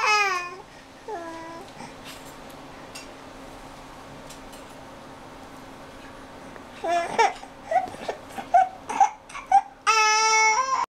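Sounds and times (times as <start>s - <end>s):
baby crying: 0.0s - 1.7s, 8.5s - 10.9s.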